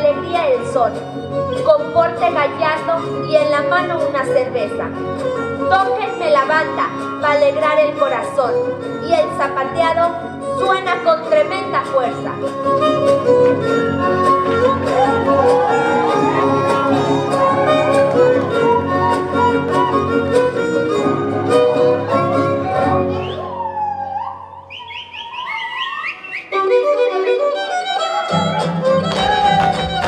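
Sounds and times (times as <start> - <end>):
strummed string accompaniment: 0.0 - 23.4, 26.6 - 30.0
violin playing: 0.0 - 23.4, 26.6 - 30.0.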